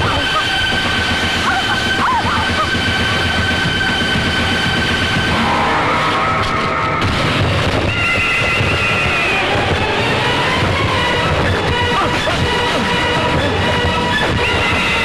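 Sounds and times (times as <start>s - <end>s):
loud dramatic film music: 0.0s - 15.0s.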